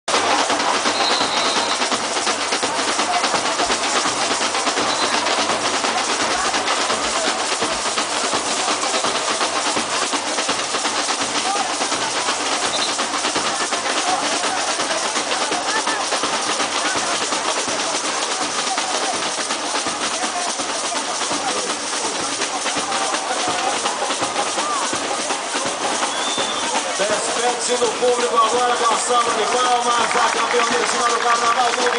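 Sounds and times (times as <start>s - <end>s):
samba percussion group drumming: 0.0s - 31.9s
voices: 0.1s - 31.9s.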